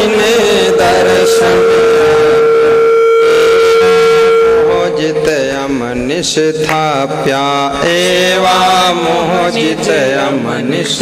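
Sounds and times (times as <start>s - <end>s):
long held note: 0.0s - 7.2s
person singing: 0.0s - 11.0s.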